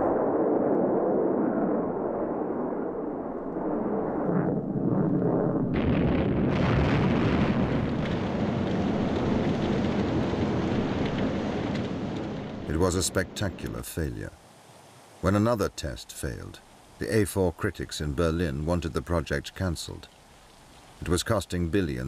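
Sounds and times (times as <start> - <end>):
rocket explosion: 0.0 - 13.8
rocket engine roaring: 0.0 - 14.1.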